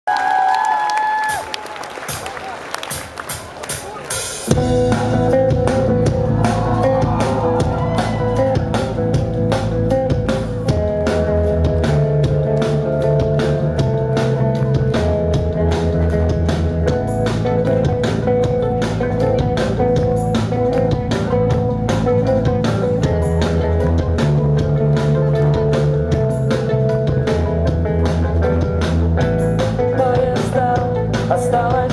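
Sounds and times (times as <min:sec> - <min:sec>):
crowd noise: 0:00.1 - 0:31.9
rock band playing: 0:01.2 - 0:31.9.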